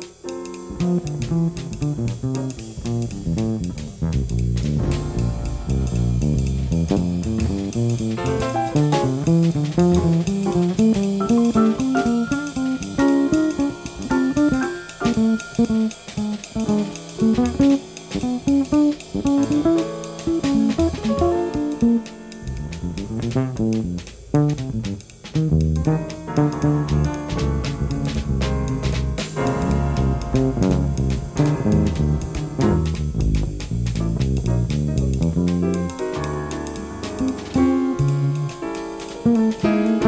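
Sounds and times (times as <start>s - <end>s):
drum kit keeping time: 0.0s - 40.0s
plucked bass lines: 0.7s - 40.0s.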